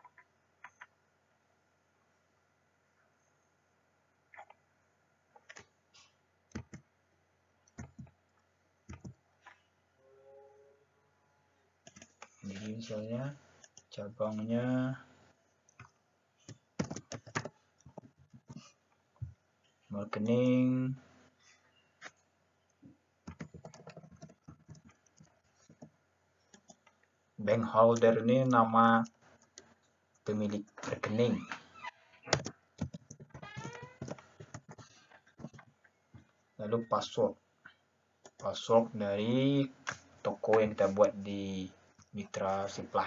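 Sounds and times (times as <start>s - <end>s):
computer keyboard typing: 6.5s - 6.8s, 8.9s - 9.2s, 11.8s - 12.3s, 15.8s - 18.7s, 23.2s - 25.9s, 32.3s - 35.7s.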